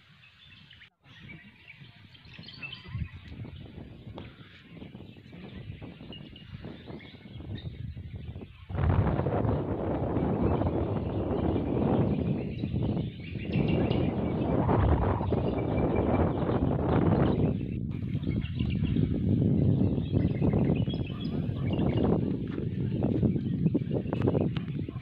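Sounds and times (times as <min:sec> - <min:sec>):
faint bird chirps: 0:00.1 - 0:08.7
wind buffeting microphone: 0:00.4 - 0:25.0.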